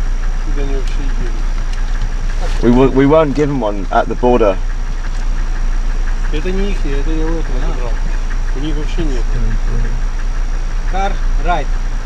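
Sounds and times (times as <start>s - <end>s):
car engine idling: 0.0s - 12.0s
person speaking: 2.3s - 4.6s, 6.3s - 10.1s.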